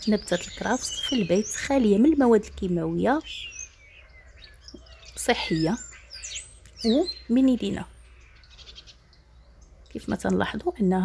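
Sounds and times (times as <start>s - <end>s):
small bird chirping: 0.0s - 11.0s.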